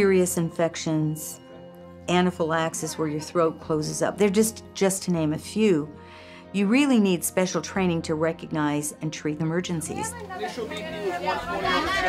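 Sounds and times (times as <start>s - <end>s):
indistinct chatter of voices: 9.9s - 12.0s.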